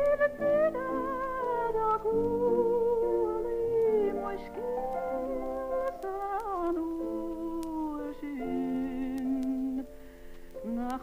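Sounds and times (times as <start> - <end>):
woman singing slow air: 0.0 - 9.9, 10.6 - 11.0.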